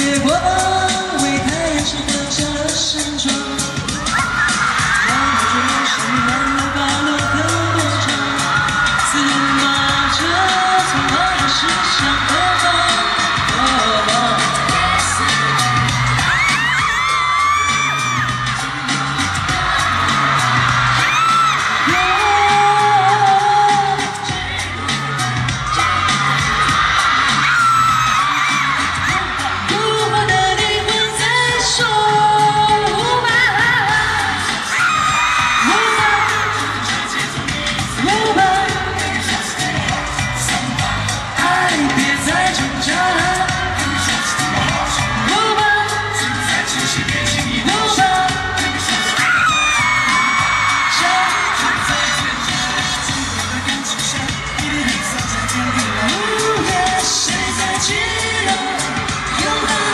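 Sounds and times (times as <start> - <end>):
woman singing: 0.0 - 18.3, 21.0 - 25.9, 27.5 - 59.9
amplified backing track with bass beat: 0.0 - 59.9
audience shouts and whoops: 0.0 - 59.9.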